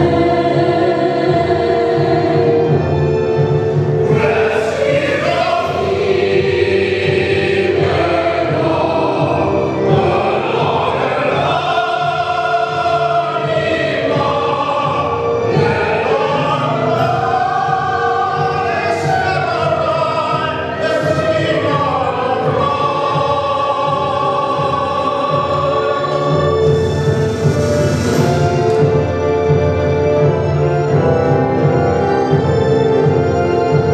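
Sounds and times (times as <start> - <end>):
keyboard accompaniment: 0.0 - 33.9
mixed choir singing: 0.0 - 33.9.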